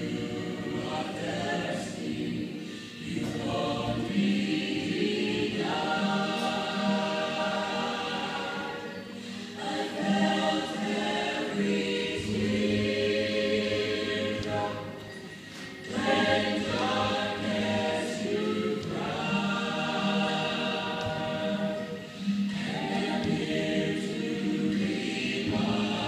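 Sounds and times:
women singing in harmony: 0.0s - 26.0s.

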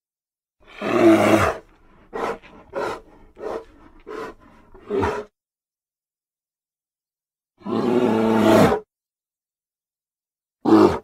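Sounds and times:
bear growling: 0.7s - 5.3s.

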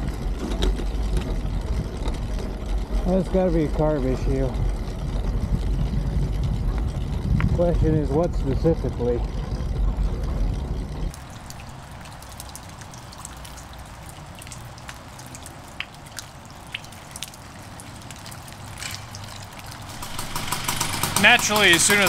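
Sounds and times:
distant engine hum: 0.0s - 22.0s
wind and moped engine rumble: 0.0s - 22.0s
light ticks and drips: 11.1s - 20.0s.

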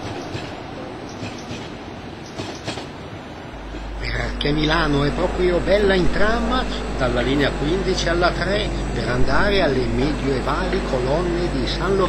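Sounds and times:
tram rolling on rails: 0.0s - 12.0s
low hum: 3.5s - 12.0s.

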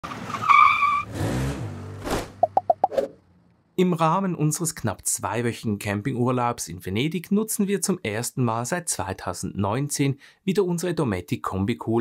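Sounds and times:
car tyres squealing: 0.0s - 3.2s.

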